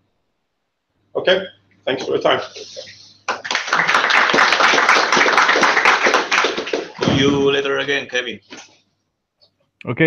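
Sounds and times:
audience applauding: 0:03.3 - 0:07.2.

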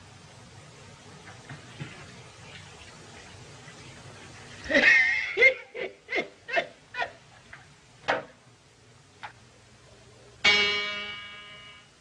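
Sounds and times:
soundtrack hiss: 0:00.0 - 0:12.0
short laugh-like yelps: 0:04.6 - 0:07.2
high pitched cry: 0:04.7 - 0:05.8.

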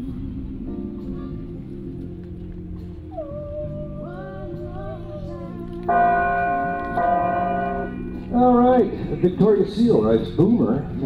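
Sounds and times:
bell-like chime: 0:05.9 - 0:09.2.

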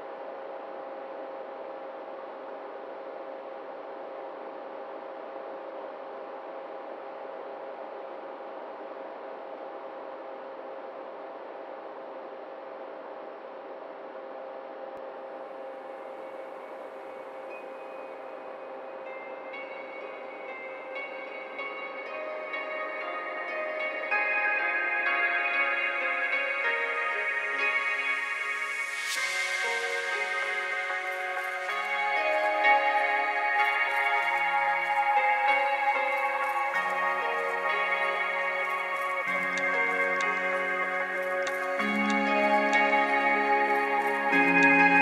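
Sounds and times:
steady drone with hiss: 0:00.0 - 0:45.0
ambient music with chiming notes: 0:15.0 - 0:45.0.

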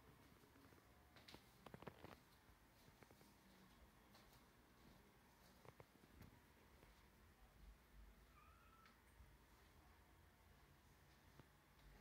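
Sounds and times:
faint short high tone: 0:08.3 - 0:09.0.

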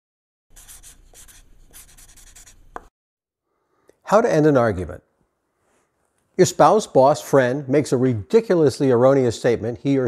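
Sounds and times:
pen scratching on paper: 0:00.5 - 0:02.9.

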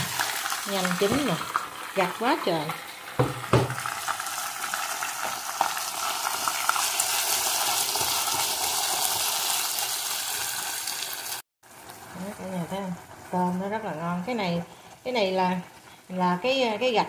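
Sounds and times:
shrimp sizzling in a saucepan: 0:00.0 - 0:17.0.

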